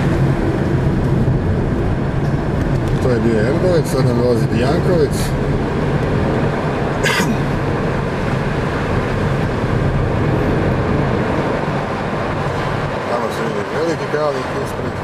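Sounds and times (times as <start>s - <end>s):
car road and engine noise: 0.0s - 15.0s.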